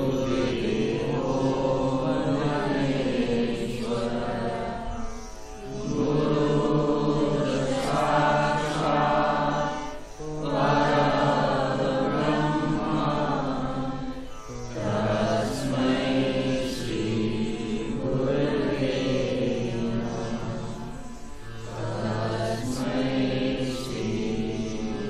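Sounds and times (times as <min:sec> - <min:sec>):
devotional mantra chanting: 0:00.0 - 0:25.0.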